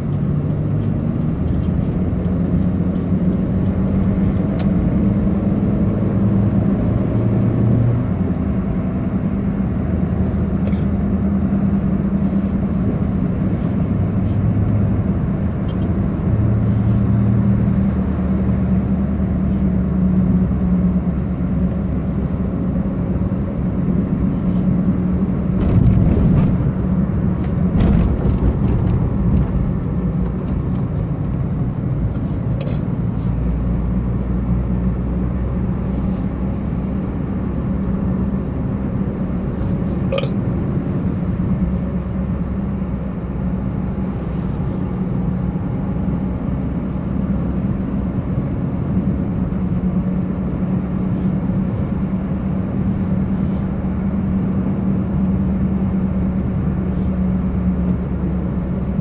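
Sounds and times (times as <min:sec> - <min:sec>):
car engine hum inside cabin: 0:00.0 - 0:59.0.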